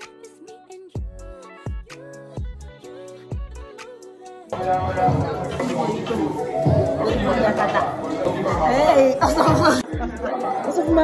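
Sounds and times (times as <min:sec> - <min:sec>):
music with deep bass beat: 0:00.8 - 0:03.9, 0:06.6 - 0:11.0
voices chattering: 0:04.6 - 0:11.0.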